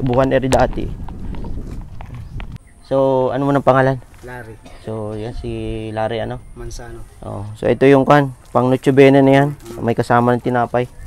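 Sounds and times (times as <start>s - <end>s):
footsteps on stone path: 0.0s - 2.8s, 3.4s - 5.4s
man talking: 2.8s - 11.0s.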